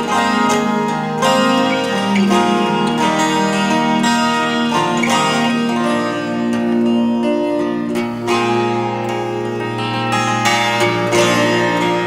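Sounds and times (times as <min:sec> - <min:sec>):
acoustic guitar plucking: 0:00.0 - 0:12.0.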